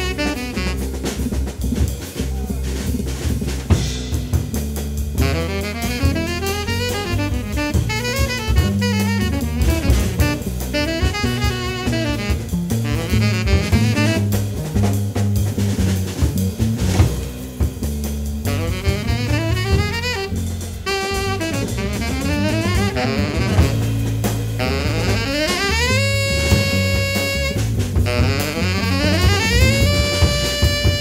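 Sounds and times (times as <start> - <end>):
tenor saxophone solo: 0.0 - 15.5, 18.3 - 31.0
bass: 0.0 - 31.0
drum kit: 0.0 - 31.0.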